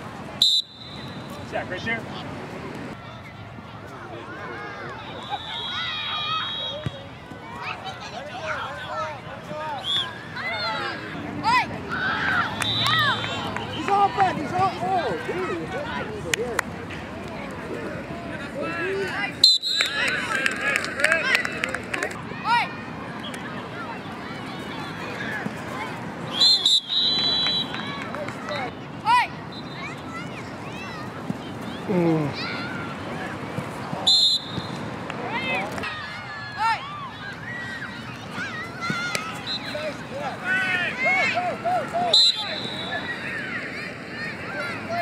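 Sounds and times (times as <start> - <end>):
faint voices: 0.0 - 45.0
referee's whistle blasts: 0.4 - 1.4, 5.2 - 7.0, 19.4 - 20.0, 26.3 - 27.8, 34.1 - 34.8, 42.0 - 43.1
children shouting and calling: 2.9 - 9.3, 22.2 - 26.4, 27.7 - 34.0, 35.2 - 45.0.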